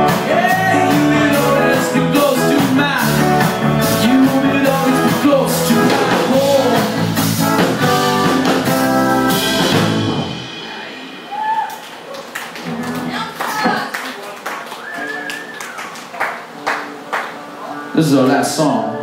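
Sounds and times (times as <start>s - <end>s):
live ska band playing: 0.0s - 14.0s, 14.6s - 19.0s
audience whooping: 10.6s - 16.6s
audience clapping: 11.6s - 17.6s.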